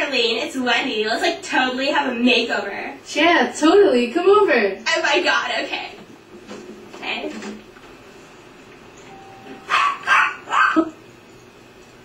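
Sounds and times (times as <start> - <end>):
doorbell: 9.0 - 9.8
dog barking: 9.6 - 11.0.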